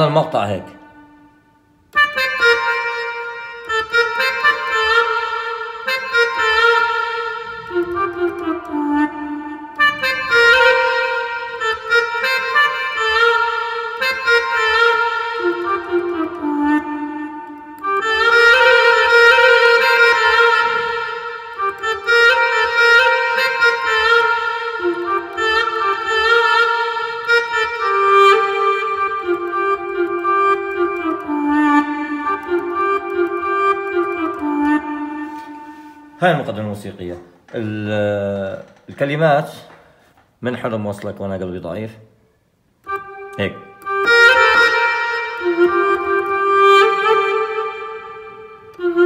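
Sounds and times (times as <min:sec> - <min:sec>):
keyboard wind-instrument melody: 0:00.0 - 0:38.7, 0:42.1 - 0:49.0.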